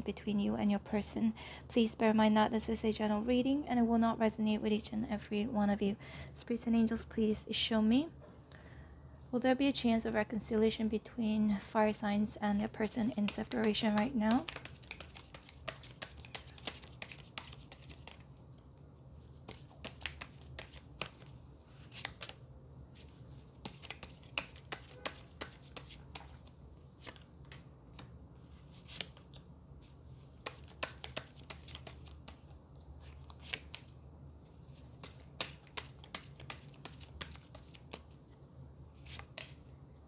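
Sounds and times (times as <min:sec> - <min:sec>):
cards being shuffled and dealt: 0:12.5 - 0:18.4, 0:19.2 - 0:22.4, 0:23.0 - 0:38.3, 0:39.0 - 0:39.7.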